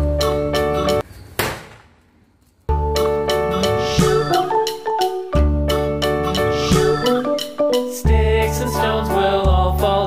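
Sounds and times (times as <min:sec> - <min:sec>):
mallet percussion music: 0:02.7 - 0:09.7.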